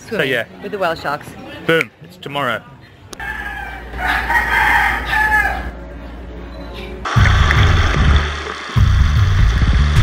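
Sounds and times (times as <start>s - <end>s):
rooster crowing: 3.2s - 5.8s.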